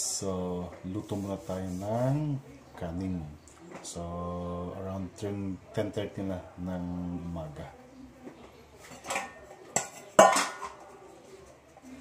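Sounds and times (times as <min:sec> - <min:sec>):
metal cookware clanking: 0:08.8 - 0:11.1.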